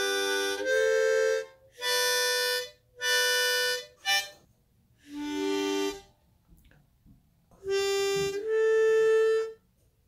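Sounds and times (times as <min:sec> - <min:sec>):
harmonica puff: 0:00.0 - 0:04.4, 0:05.0 - 0:06.1, 0:07.6 - 0:09.6
harmonica chords: 0:00.0 - 0:06.2, 0:07.6 - 0:09.7.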